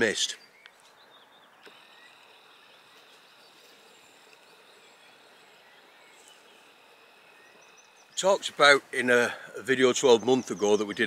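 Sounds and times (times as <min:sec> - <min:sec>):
distant birds chirping: 0:00.0 - 0:11.0
steady soft hiss: 0:00.0 - 0:11.0.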